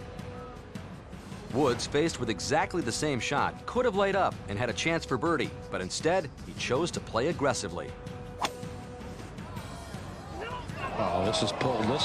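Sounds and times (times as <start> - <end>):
golf club striking ball: 8.4 - 8.6.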